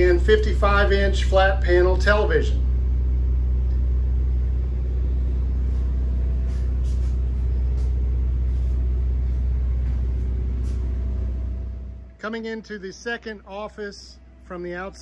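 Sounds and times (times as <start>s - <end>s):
machinery humming: 0.0s - 15.0s.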